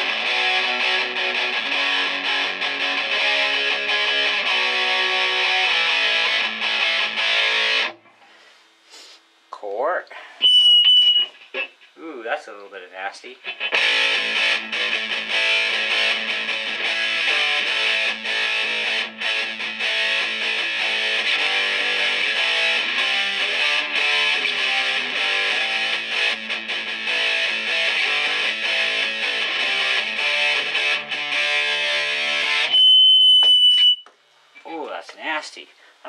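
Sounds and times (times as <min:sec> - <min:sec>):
distorted electric guitar: 0:00.0 - 0:08.1, 0:10.4 - 0:34.0
high-pitched feedback squeal: 0:10.4 - 0:11.8, 0:32.7 - 0:34.1.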